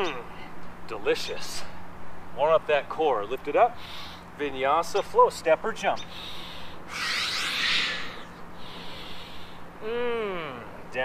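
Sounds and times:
man breathing hard: 6.1 - 9.8.

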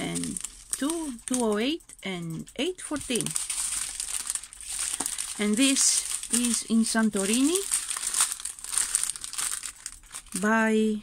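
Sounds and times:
plastic bags crinkling: 0.0 - 1.8, 2.7 - 10.7.

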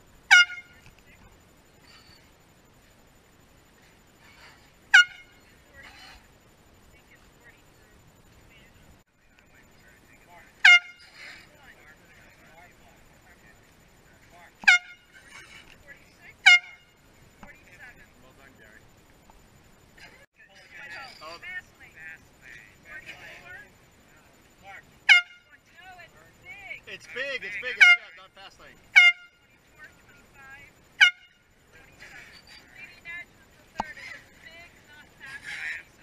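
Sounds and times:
air horn blasts: 0.3 - 0.9, 4.9 - 5.5, 10.6 - 11.4, 14.6 - 15.6, 16.4 - 17.0, 25.0 - 25.6, 27.6 - 28.3, 28.9 - 29.5, 31.0 - 31.5
faint voices: 19.8 - 36.0
air horn blast: 28.9 - 29.5.

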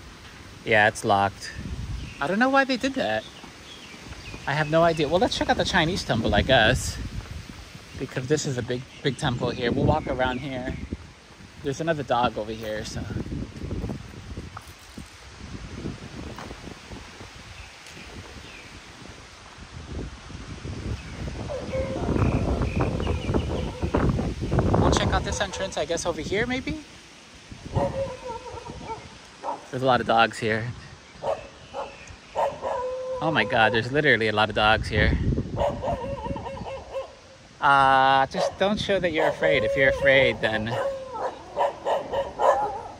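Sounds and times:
wind buffeting microphone: 0.0 - 42.9
dog whining: 27.8 - 29.0, 40.7 - 42.9.

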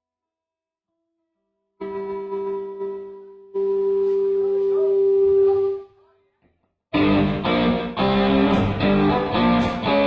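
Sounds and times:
rock band holding a note: 7.0 - 10.0.

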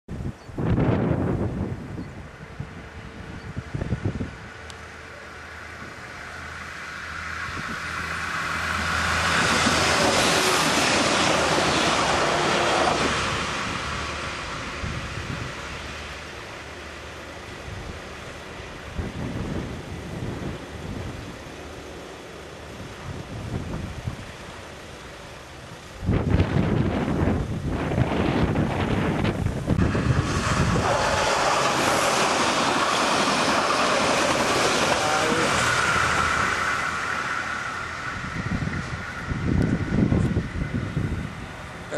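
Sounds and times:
wind on microphone: 0.1 - 4.6, 18.8 - 21.4, 22.8 - 24.3, 26.0 - 41.7
diesel railcar approaching: 0.1 - 41.9
diesel train passing: 0.1 - 41.9.

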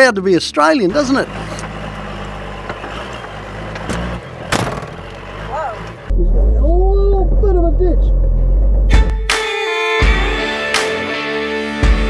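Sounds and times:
vehicle engine running low: 0.9 - 8.9
loud music with heavy bass: 8.7 - 12.0.

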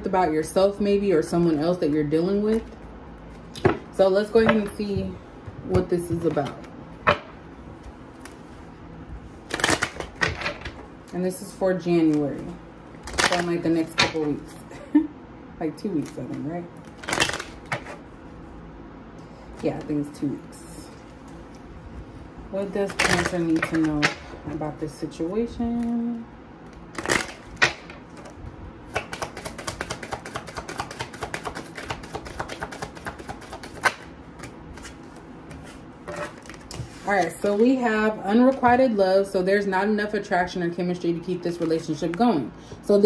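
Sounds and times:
cards being shuffled: 16.0 - 18.0, 28.9 - 37.4.

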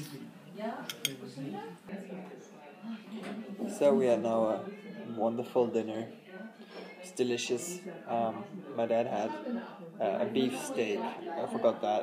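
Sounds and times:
voices in background: 0.0 - 12.0
cutlery clinking on a china plate: 0.9 - 1.2.

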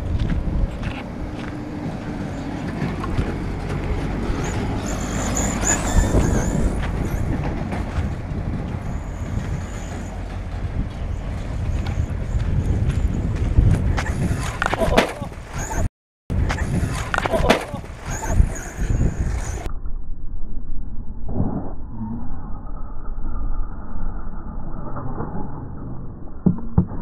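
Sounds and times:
toy truck tyres rumbling on gravel: 0.0 - 15.8, 16.4 - 19.7.

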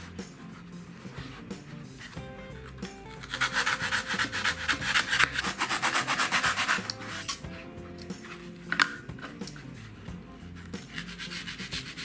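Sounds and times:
knife sawing through foam: 3.3 - 7.3, 10.9 - 12.0.

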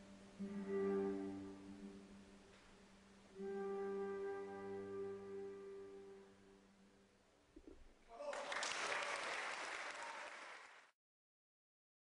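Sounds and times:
audience applause: 8.1 - 11.0.

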